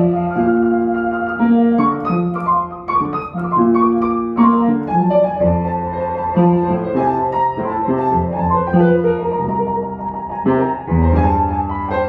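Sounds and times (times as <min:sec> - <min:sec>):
solo piano: 0:00.0 - 0:12.0.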